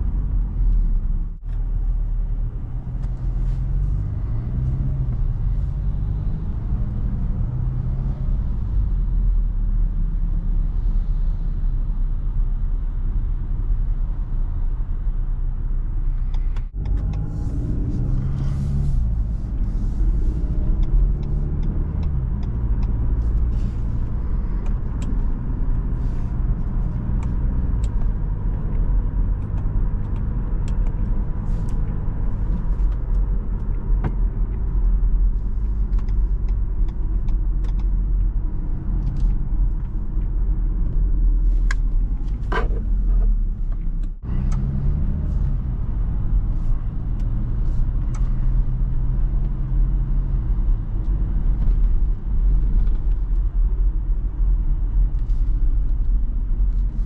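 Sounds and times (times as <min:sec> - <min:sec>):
car engine accelerating: 0:00.0 - 0:57.0
tyre and road noise: 0:00.0 - 0:57.0.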